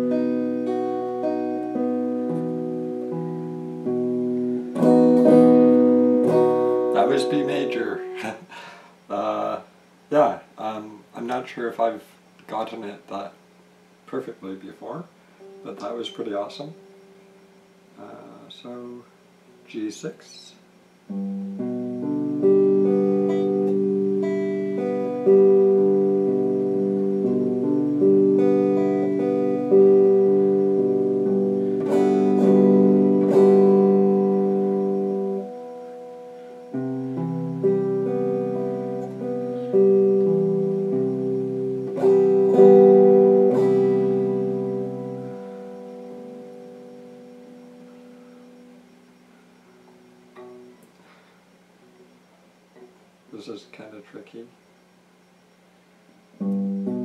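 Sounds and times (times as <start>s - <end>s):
electric guitar ringing chords: 0.0s - 10.4s, 11.8s - 53.3s, 54.6s - 57.0s.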